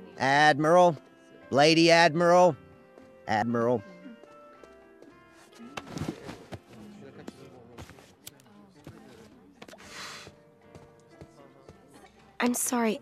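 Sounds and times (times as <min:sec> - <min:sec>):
soft cartoon background music: 0:00.0 - 0:13.0
breathy puff of exhaled smoke: 0:09.8 - 0:10.4.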